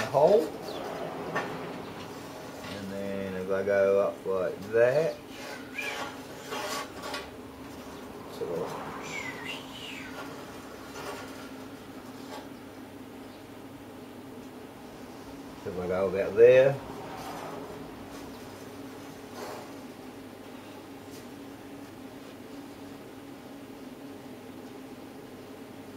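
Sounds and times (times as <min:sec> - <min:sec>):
faint steady hum: 0:00.0 - 0:25.9
metal scraping on steel sheet: 0:05.2 - 0:07.4, 0:10.2 - 0:11.6.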